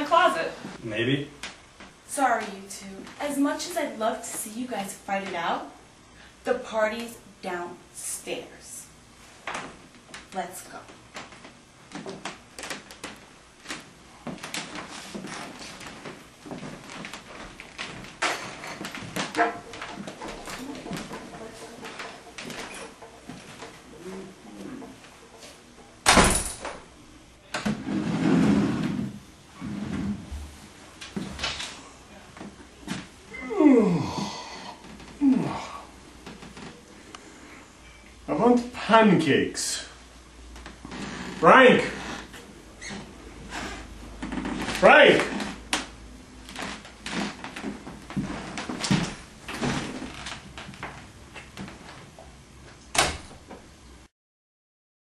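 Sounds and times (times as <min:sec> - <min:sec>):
door banging: 0:18.2 - 0:26.9
quiet knocks: 0:18.9 - 0:25.6
door banging shut: 0:26.0 - 0:26.9, 0:52.9 - 0:53.4
man sighing: 0:33.4 - 0:35.9.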